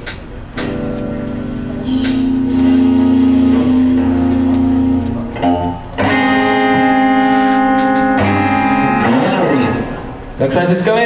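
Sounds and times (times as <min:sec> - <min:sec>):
rock band sustained chord: 0:00.6 - 0:10.6.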